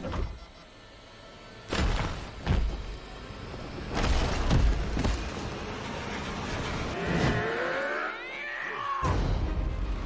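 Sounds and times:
high wailing gliding tones: 0:06.6 - 0:09.1.

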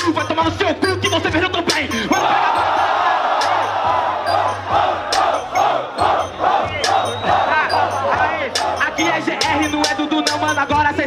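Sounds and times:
bass-heavy beat: 0:00.0 - 0:11.0
crowd shouting and cheering: 0:01.0 - 0:11.0
crowd chanting: 0:02.0 - 0:10.2.

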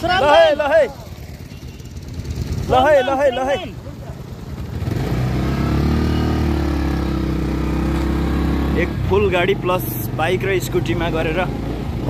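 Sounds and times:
motorcycle engine running: 0:00.0 - 0:12.0.

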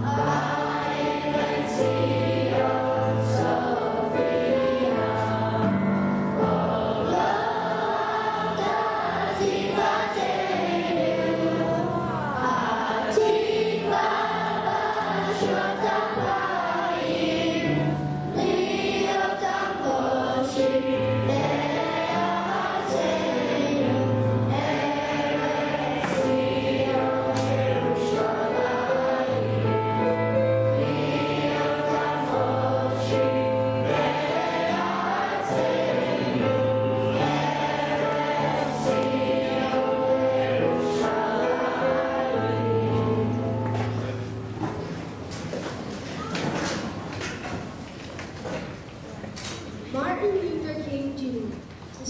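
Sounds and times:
choir singing: 0:00.0 - 0:44.6
instrumental accompaniment: 0:00.0 - 0:47.8.

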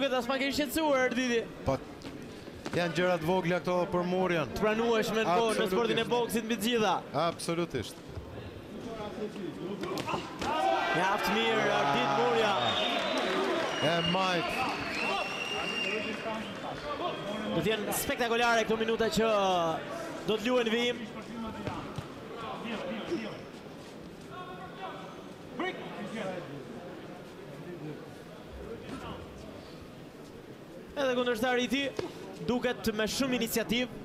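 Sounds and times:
people shouting and calling: 0:10.0 - 0:12.5.

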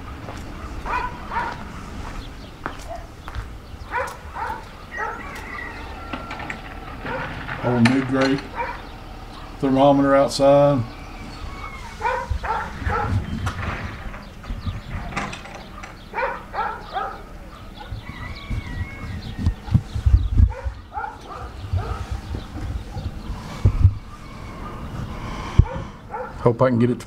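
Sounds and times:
low thumps and rumble: 0:10.8 - 0:16.2, 0:17.8 - 0:26.4.

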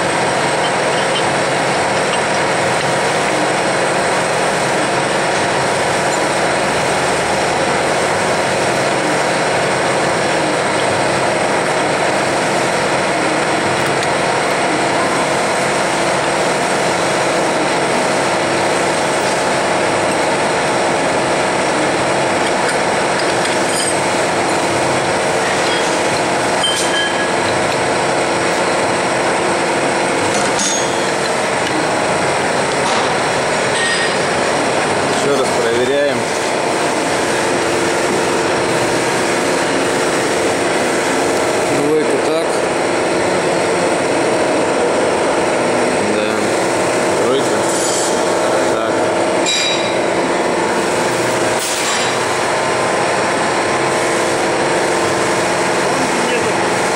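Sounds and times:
machinery droning: 0:00.0 - 0:56.9.

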